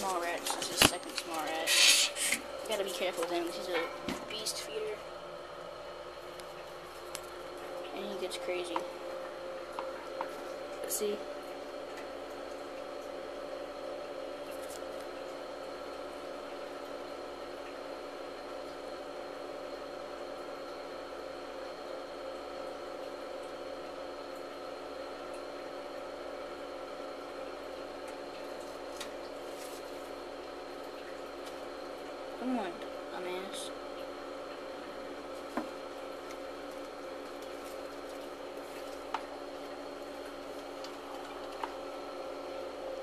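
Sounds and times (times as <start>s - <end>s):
electrical hum: 0.0s - 43.0s.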